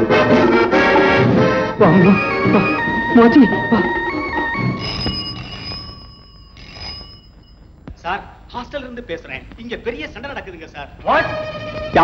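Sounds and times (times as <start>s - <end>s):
telephone bell ringing: 2.1s - 7.9s.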